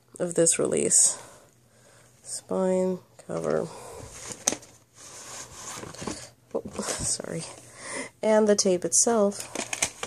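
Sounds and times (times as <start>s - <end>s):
faint rustling and scraping: 3.2s - 7.8s.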